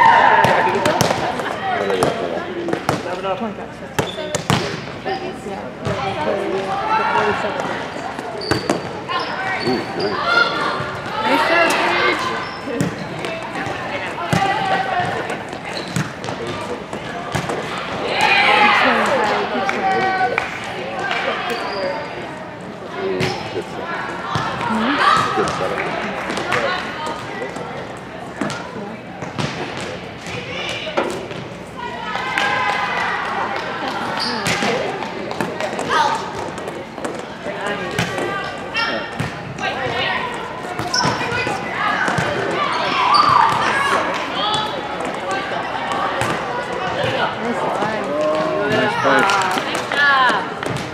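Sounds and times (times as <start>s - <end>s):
girls calling and shouting: 9.1s - 15.3s, 17.9s - 20.3s, 24.1s - 25.4s.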